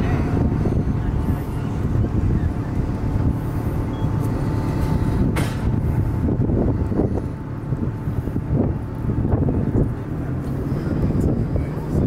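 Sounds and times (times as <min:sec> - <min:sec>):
faint voices: 0:00.0 - 0:06.2, 0:06.8 - 0:12.0
steady low rumble: 0:00.0 - 0:12.0.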